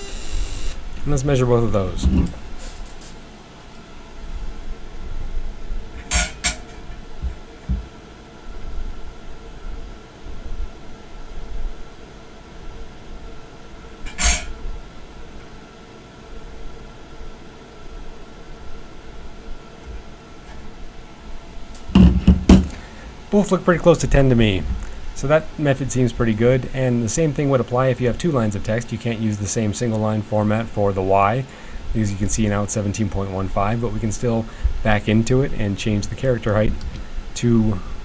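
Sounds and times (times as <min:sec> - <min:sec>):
steady hum: 0:00.0 - 0:38.0
loud knock: 0:21.9 - 0:22.8.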